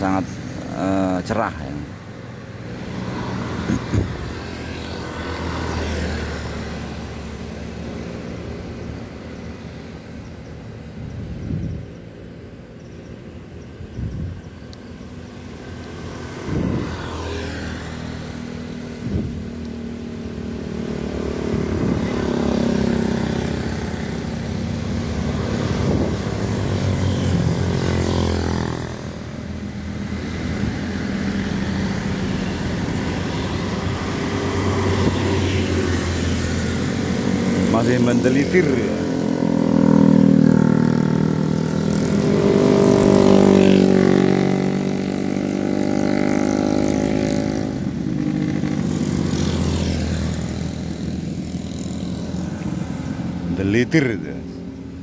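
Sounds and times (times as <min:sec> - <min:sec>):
cars passing on road: 0:00.0 - 0:55.0
motorcycles passing: 0:00.0 - 0:55.0.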